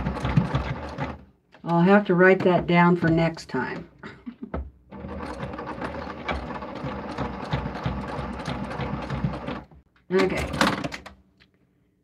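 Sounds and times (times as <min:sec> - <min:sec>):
electric sewing machine stitching: 0:00.0 - 0:01.2, 0:04.9 - 0:09.7.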